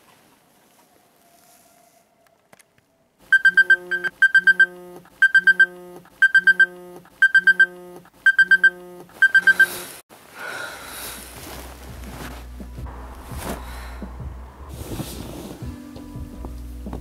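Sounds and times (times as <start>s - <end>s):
rustle: 0.0s - 2.8s
smartphone alarm beeps: 3.3s - 9.9s.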